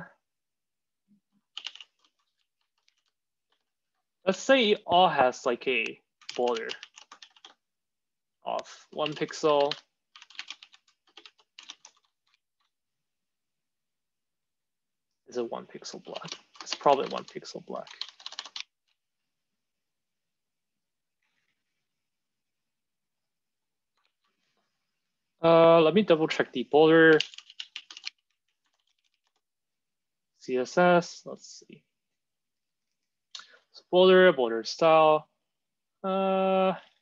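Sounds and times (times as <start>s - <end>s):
typing on computer keyboard: 1.5s - 3.7s, 6.2s - 7.6s, 8.9s - 12.7s, 16.1s - 18.7s, 27.1s - 29.4s.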